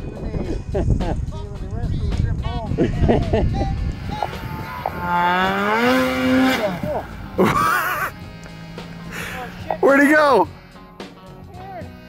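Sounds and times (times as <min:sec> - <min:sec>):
snowmobile engine revving: 0:02.8 - 0:12.0.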